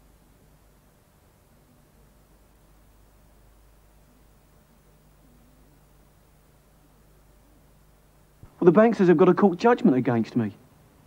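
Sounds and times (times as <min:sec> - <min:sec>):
faint tape hiss: 0:00.0 - 0:11.0
low mains hum: 0:00.0 - 0:11.0.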